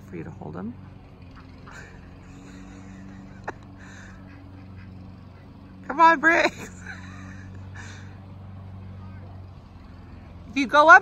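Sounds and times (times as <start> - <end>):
faint outdoor background noise: 0.0 - 11.0
low mechanical hum: 0.0 - 11.0.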